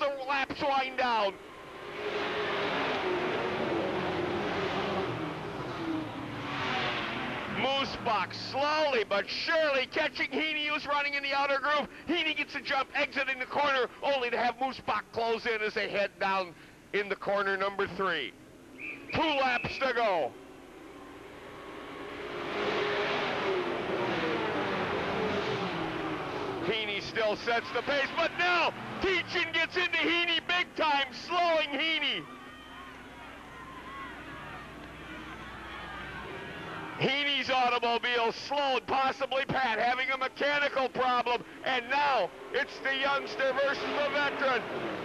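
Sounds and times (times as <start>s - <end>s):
race car engines: 0.0s - 45.0s.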